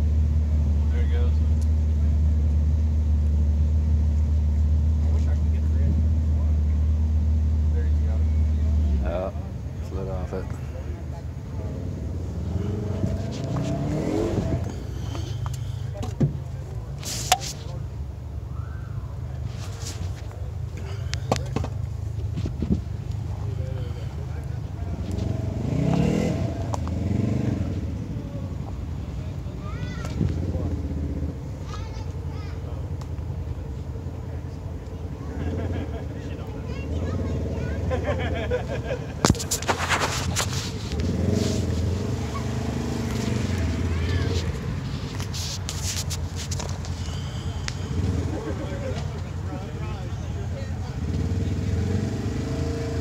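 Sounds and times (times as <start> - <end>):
vehicle engine idling: 0.0 - 53.0.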